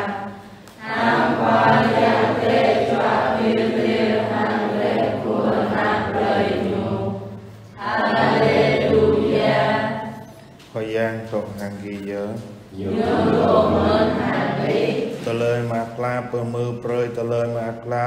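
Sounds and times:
choir singing: 0:00.0 - 0:10.5, 0:12.7 - 0:15.4.

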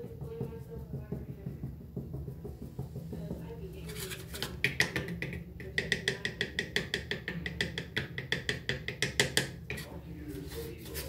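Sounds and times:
fingers tapping on plastic: 0:00.0 - 0:09.8.

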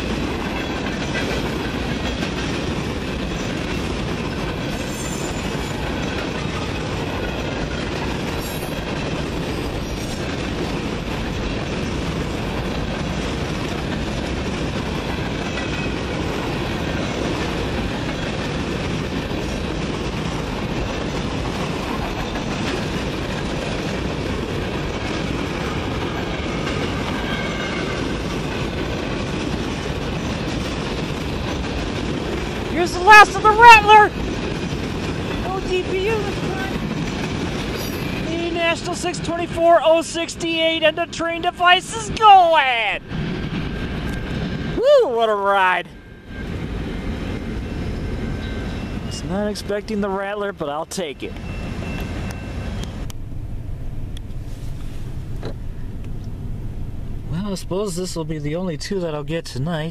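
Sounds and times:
freight train wheels on rails: 0:00.0 - 0:59.9.

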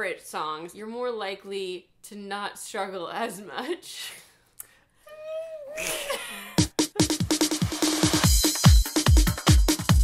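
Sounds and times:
electronic dance music: 0:06.8 - 0:10.0.

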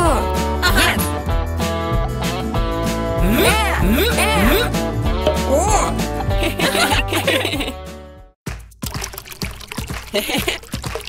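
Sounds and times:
music: 0:00.0 - 0:11.0
cartoon water splashing: 0:08.8 - 0:11.0.

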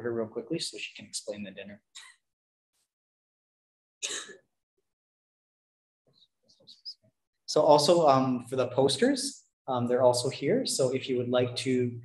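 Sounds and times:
person clearing throat: 0:04.0 - 0:04.5.

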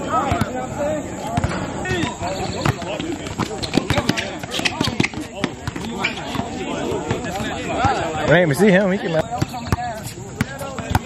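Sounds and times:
players' voices and calls: 0:00.0 - 0:11.0
basketball bouncing on hard court: 0:01.4 - 0:08.0, 0:09.1 - 0:11.0.

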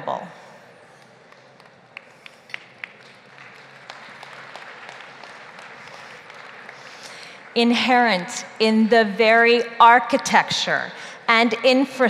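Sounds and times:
audience applauding: 0:00.9 - 0:07.6.

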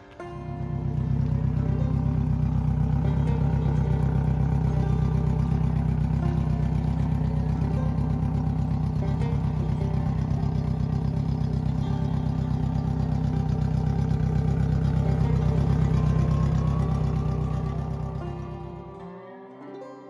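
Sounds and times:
outboard engines idling: 0:00.0 - 0:19.0
music: 0:00.0 - 0:20.0.

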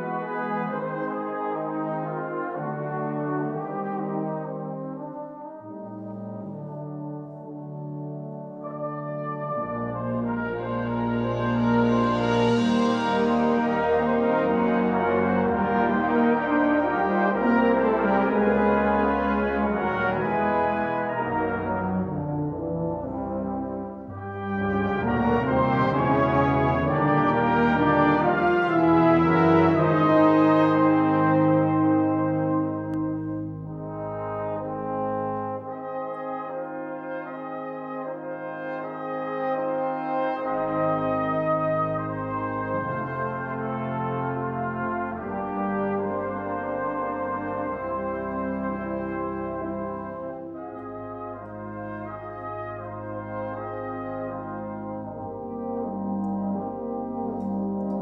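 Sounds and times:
brass band playing chords: 0:00.0 - 0:58.0.

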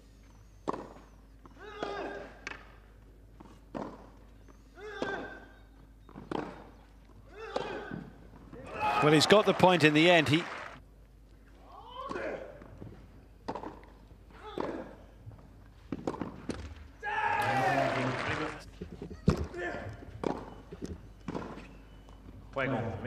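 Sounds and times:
tennis ball hits: 0:00.6 - 0:01.0, 0:06.2 - 0:06.8, 0:13.4 - 0:13.9, 0:15.9 - 0:16.8, 0:20.2 - 0:20.6.

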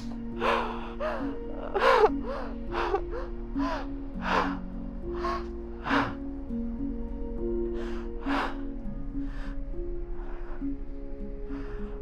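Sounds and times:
soft sustained music: 0:00.0 - 0:12.0
person sobbing: 0:00.3 - 0:04.6.

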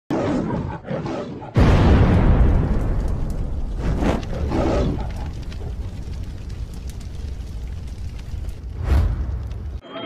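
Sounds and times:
deep rumbling boom: 0:01.6 - 0:09.8
growling roar: 0:04.0 - 0:06.1.

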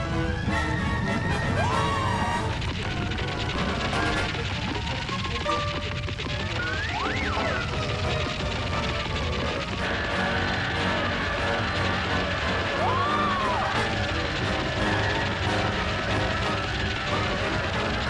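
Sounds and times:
cartoon background music: 0:00.0 - 0:18.0
scrabbling digging noise: 0:01.4 - 0:18.0.

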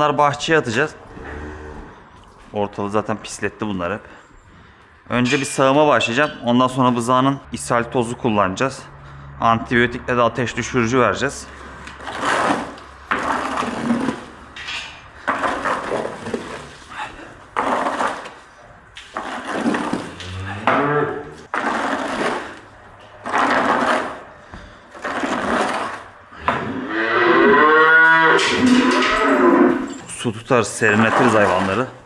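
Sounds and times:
cow mooing: 0:01.1 - 0:02.0, 0:20.1 - 0:21.4, 0:26.6 - 0:29.9
scraper on concrete floor: 0:11.6 - 0:14.4, 0:15.3 - 0:20.3, 0:21.4 - 0:26.2, 0:30.8 - 0:31.9.

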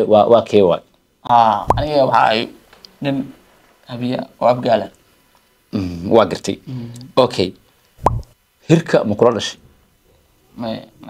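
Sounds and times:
low thud: 0:01.7 - 0:01.9, 0:08.0 - 0:08.3
short plop with falling pitch: 0:01.7 - 0:01.9, 0:08.0 - 0:08.3.

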